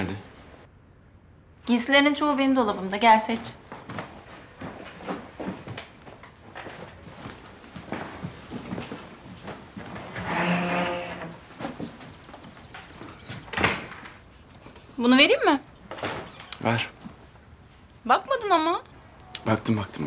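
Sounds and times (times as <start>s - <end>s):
footsteps on wooden floor: 2.7s - 13.5s
wardrobe door creaking: 10.1s - 11.4s, 15.9s - 16.7s.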